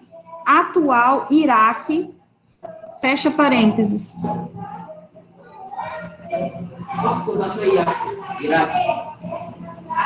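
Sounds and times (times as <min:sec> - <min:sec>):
faint children's voices talking: 0:00.0 - 0:10.0.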